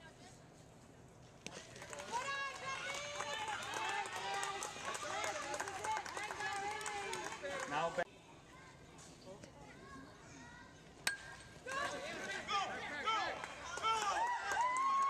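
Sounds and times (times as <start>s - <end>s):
bat hitting ball: 11.1s - 11.6s.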